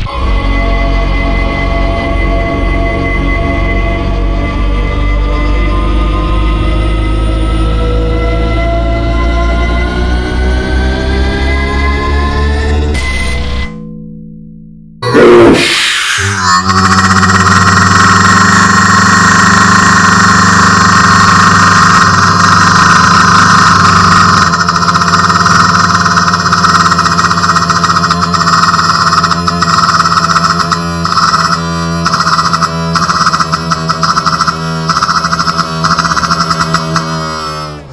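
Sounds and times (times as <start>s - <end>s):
distorted synthesizer drone: 15.0s - 37.9s.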